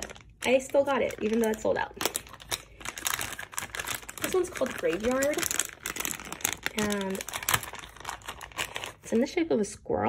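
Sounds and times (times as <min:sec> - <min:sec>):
plastic bag crinkling: 0:00.0 - 0:09.4.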